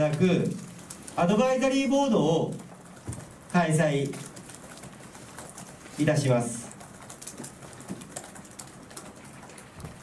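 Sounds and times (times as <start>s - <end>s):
computer keyboard typing: 0.0s - 10.0s
faint room noise: 0.0s - 10.0s.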